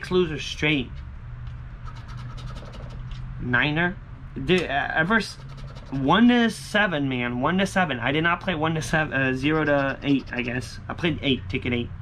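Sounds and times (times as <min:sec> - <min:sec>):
steady low hum: 0:00.0 - 0:12.0
coin scratching lottery ticket: 0:01.8 - 0:03.1, 0:05.2 - 0:06.1, 0:09.4 - 0:10.7.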